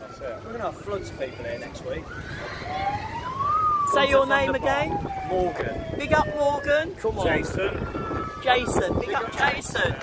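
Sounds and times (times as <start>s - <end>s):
siren wailing: 0.0s - 10.0s.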